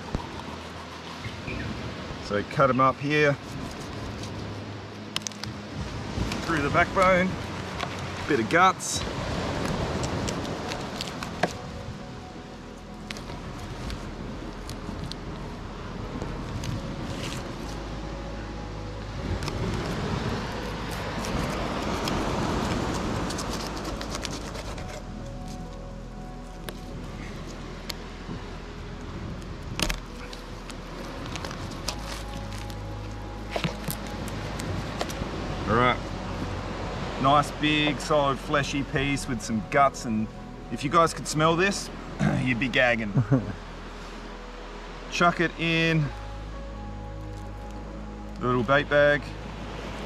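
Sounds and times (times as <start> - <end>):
background music with low bass: 0.0 - 50.0.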